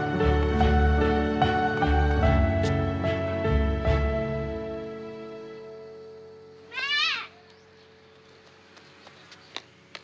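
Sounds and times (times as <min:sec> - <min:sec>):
soft background music: 0:00.0 - 0:09.0
child calling out: 0:06.7 - 0:07.4.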